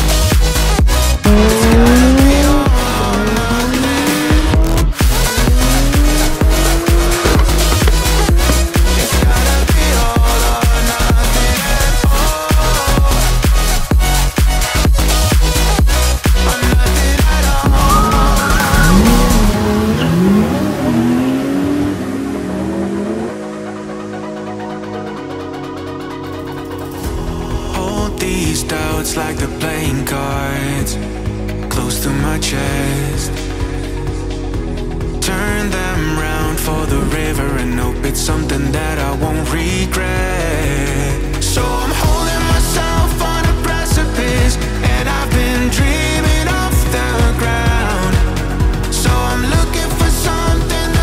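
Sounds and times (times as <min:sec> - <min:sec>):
car engine revving: 0:00.7 - 0:11.9, 0:15.0 - 0:24.1
electronic dance music: 0:01.0 - 0:14.6, 0:15.3 - 0:20.3
tyres squealing: 0:01.2 - 0:10.2, 0:17.4 - 0:20.6.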